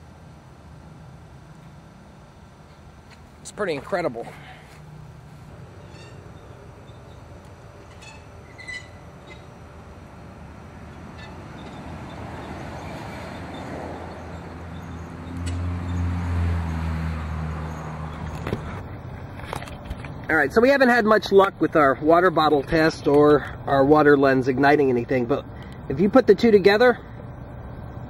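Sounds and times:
road noise: 0:00.0 - 0:28.0
passing vehicle engine drone: 0:04.2 - 0:20.2.

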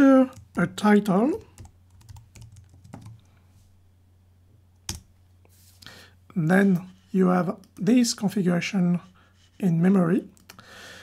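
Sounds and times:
computer keyboard typing: 0:01.3 - 0:03.3.

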